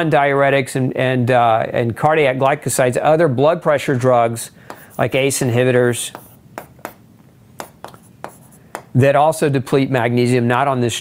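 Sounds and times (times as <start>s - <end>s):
pen tapping: 4.7s - 5.2s, 6.1s - 7.0s, 7.6s - 9.0s.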